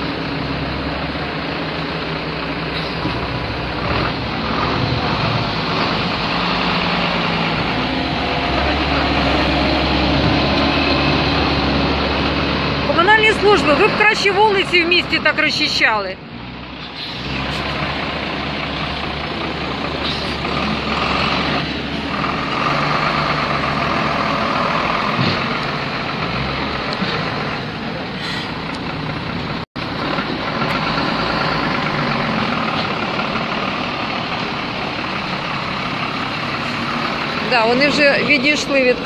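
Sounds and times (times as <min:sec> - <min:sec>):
truck engine rumbling: 0:00.0 - 0:39.0.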